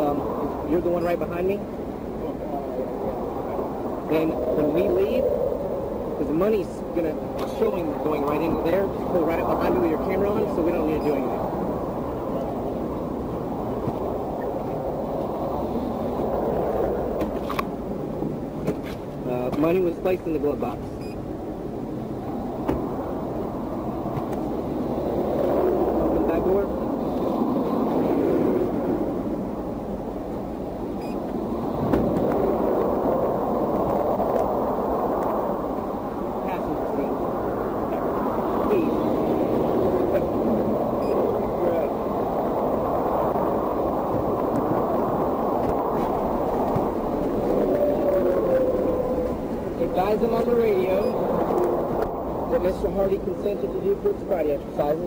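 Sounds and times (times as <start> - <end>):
vehicle road noise: 0.0 - 55.0.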